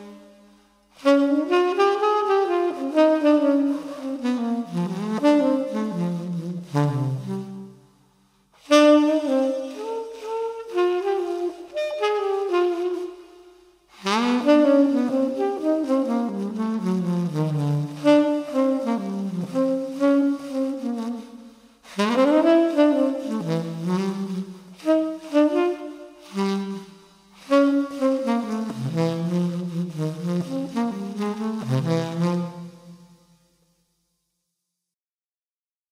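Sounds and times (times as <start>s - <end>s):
tenor saxophone jazz melody: 0.0s - 8.0s, 8.6s - 33.4s.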